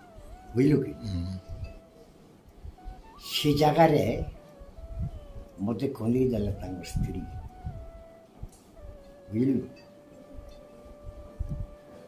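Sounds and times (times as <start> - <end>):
man's wordless wavering utterance: 0.6 - 1.6.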